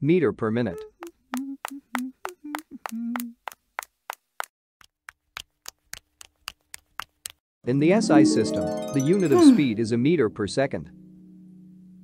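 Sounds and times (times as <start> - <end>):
cartoon clicking footsteps: 0.8 - 7.4.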